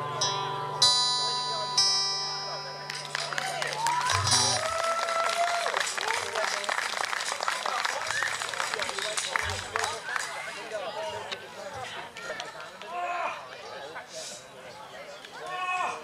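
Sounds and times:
acoustic guitar chord strummed: 0.0s - 4.6s
audience applause and cheering: 2.9s - 10.5s.

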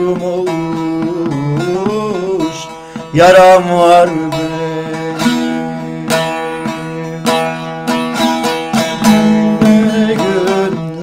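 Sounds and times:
plucked long-necked lute: 0.0s - 11.0s.

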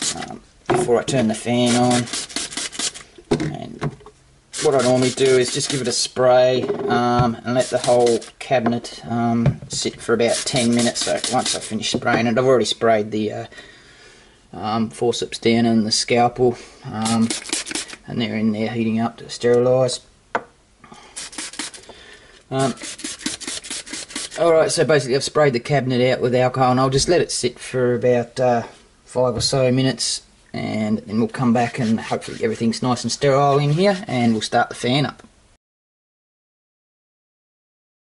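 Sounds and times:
spray bottle hissing spurts: 17.0s - 18.0s, 21.1s - 21.9s, 22.6s - 24.4s.

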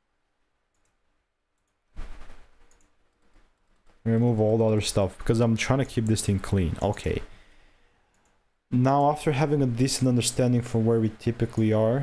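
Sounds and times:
computer mouse clicks: 0.7s - 1.0s, 1.6s - 7.2s.

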